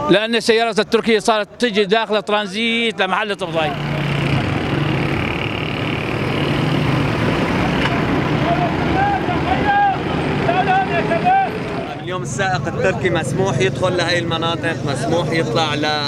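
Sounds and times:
steady road noise: 0.0 - 16.0
motorcycle driving past: 3.5 - 9.0
men calling out loudly: 8.3 - 16.0.

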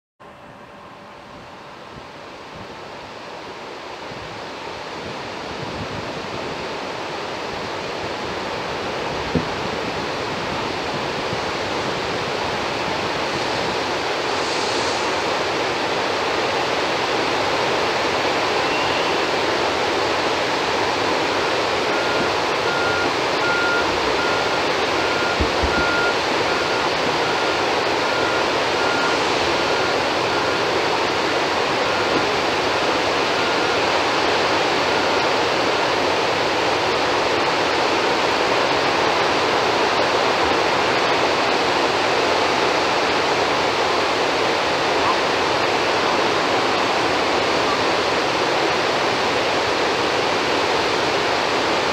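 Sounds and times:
water rushing through spillway: 1.6 - 51.9.

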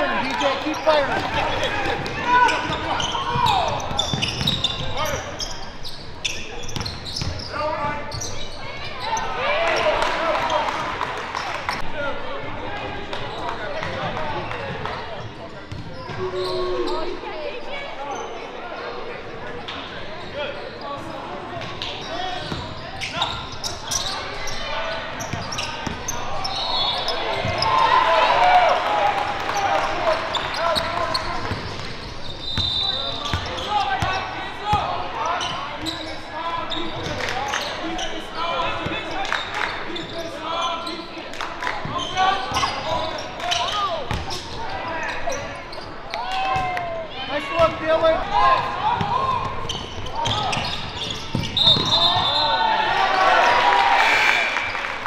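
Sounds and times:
players and spectators shouting: 24.0 - 31.5, 51.6 - 55.0.

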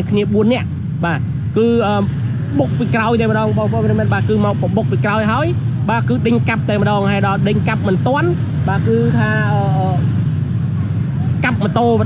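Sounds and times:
motorbikes going by: 0.0 - 12.0
road traffic rumble: 0.0 - 12.0
voices talking: 0.0 - 12.0.

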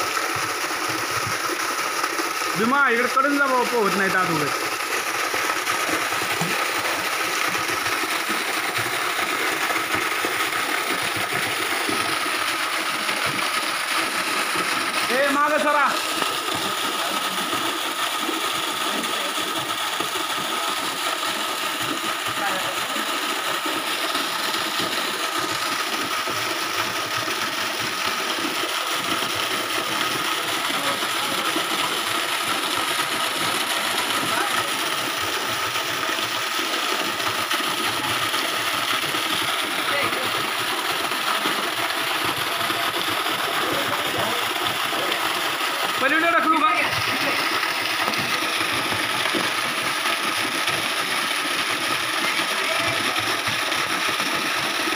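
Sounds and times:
water pouring into water: 0.0 - 54.9.

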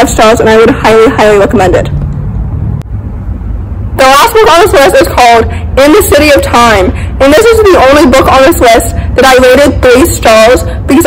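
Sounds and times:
faint steady hum: 0.0 - 11.0
low outdoor rumble: 0.0 - 11.0.

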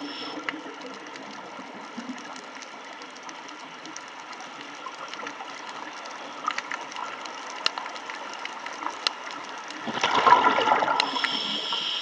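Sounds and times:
underwater sharp clicks: 0.3 - 11.4
scuba diver exhaling bubbles: 9.9 - 12.0.

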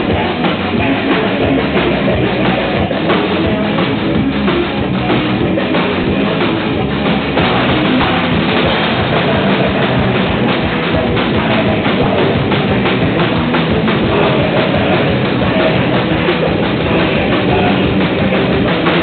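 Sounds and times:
drum kit: 0.0 - 19.0
electric guitar: 0.0 - 19.0
live rock band playing: 0.0 - 19.0.

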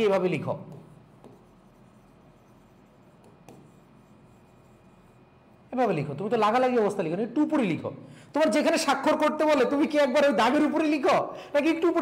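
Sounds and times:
low steady hum: 0.0 - 12.0
pen writing on screen: 0.8 - 5.2.

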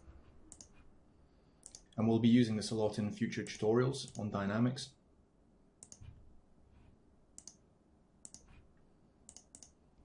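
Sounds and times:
faint computer mouse clicks: 0.5 - 0.8, 1.6 - 2.0, 5.8 - 6.2, 7.4 - 7.6, 8.2 - 8.6, 9.3 - 9.8.

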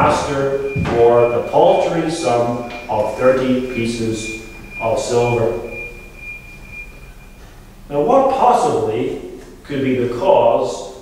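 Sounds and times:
man speaking: 0.0 - 5.8, 7.9 - 11.0
steady high-pitched tone: 0.0 - 9.3
low hum: 0.0 - 10.2.

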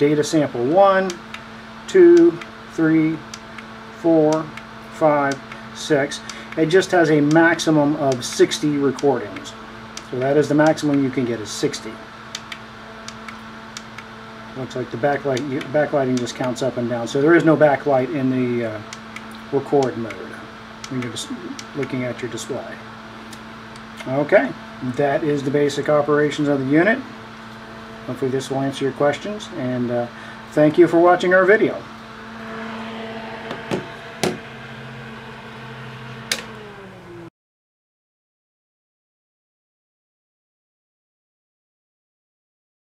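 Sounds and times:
cooling fan humming: 0.0 - 37.3
sharp clicks: 5.3 - 7.4, 8.1 - 11.1, 12.3 - 14.1.

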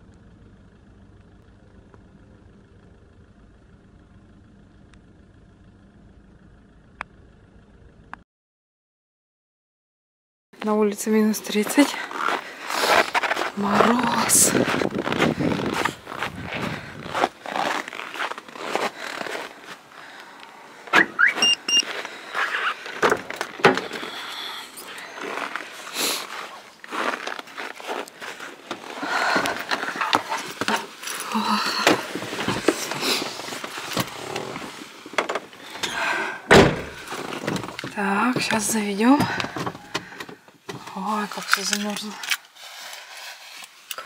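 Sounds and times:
footsteps crunching on frozen snow: 11.2 - 20.9, 21.8 - 35.8
short high beep: 21.1 - 21.9
car door thunk: 36.5 - 37.8
scrapes and clicks of handling: 39.4 - 44.0.

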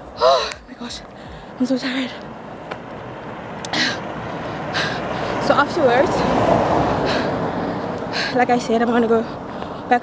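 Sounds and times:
woman breathing hard: 0.2 - 2.3, 3.7 - 5.4, 6.1 - 8.4, 9.3 - 9.9.

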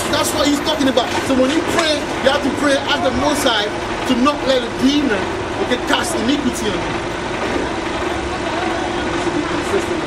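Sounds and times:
street traffic noise: 0.0 - 10.0
vehicle engine running nearby: 0.0 - 10.0.

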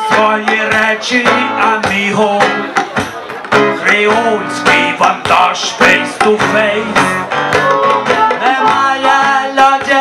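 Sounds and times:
person singing: 0.0 - 2.9, 3.7 - 10.0
hand drum percussion: 0.0 - 10.0
strummed acoustic guitar: 0.0 - 10.0.

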